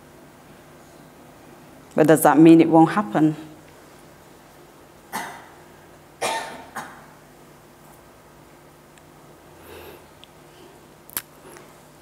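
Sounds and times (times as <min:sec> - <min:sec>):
person coughing: 0:05.1 - 0:05.6, 0:06.2 - 0:07.1.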